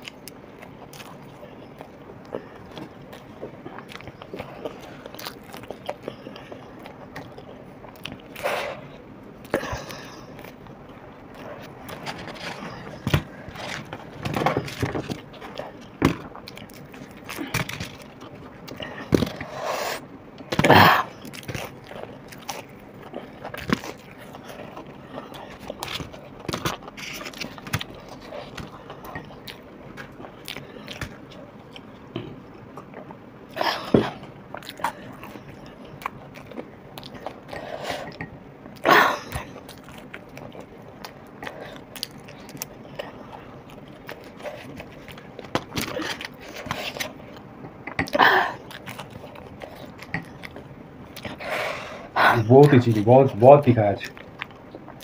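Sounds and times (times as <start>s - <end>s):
crunchy chewing: 0.0s - 55.0s.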